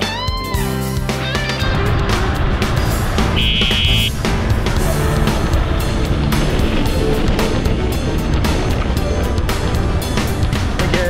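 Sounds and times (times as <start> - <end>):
music with steady beat: 2.8 - 6.0
short high held note: 3.4 - 4.2.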